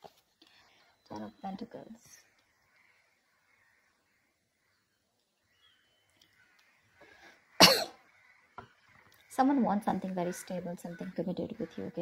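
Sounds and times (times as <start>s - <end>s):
faint breath: 0.4s - 1.1s, 6.9s - 7.6s
woman coughing: 7.6s - 8.0s.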